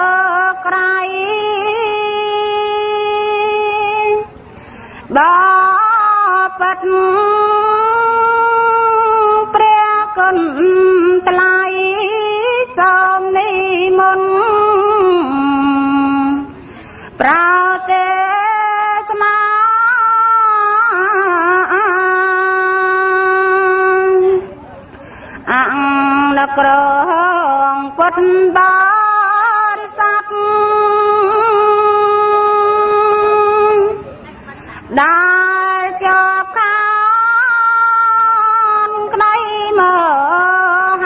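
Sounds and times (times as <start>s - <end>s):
person chanting: 17.2s - 24.5s, 25.4s - 34.1s.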